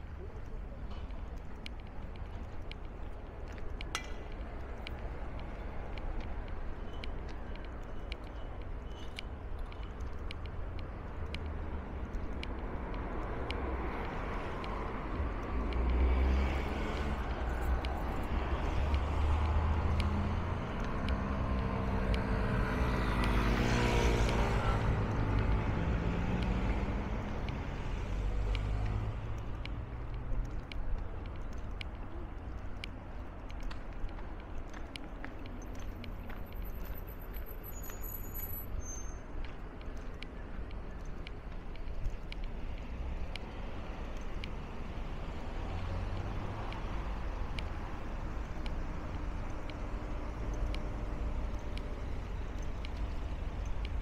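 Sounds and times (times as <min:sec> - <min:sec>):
road traffic hum: 0:00.0 - 0:54.0.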